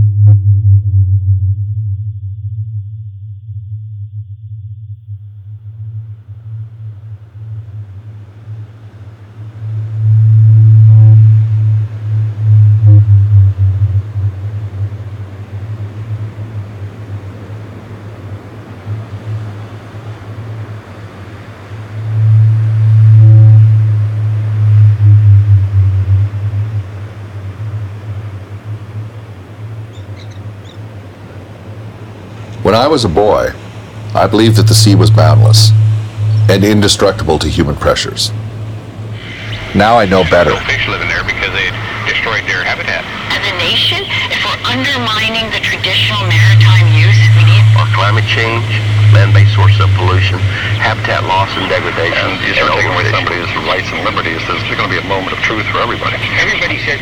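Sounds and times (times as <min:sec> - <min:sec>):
deep ocean rumble: 0:00.0 - 0:57.0
soft hiss of distant surf: 0:06.1 - 0:57.0.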